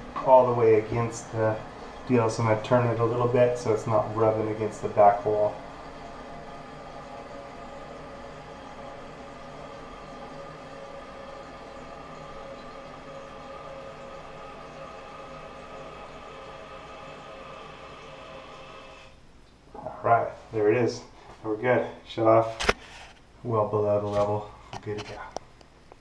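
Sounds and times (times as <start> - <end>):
water rushing into toilet tank: 0.0 - 19.1.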